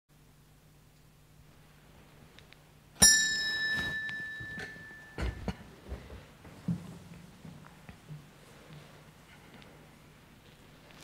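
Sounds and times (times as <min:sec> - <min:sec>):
small bell ringing: 0:03.0 - 0:05.5.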